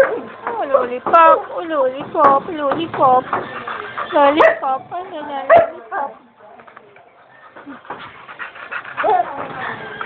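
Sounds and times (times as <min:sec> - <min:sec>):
dog panting quickly: 0:02.6 - 0:04.6, 0:07.4 - 0:10.0.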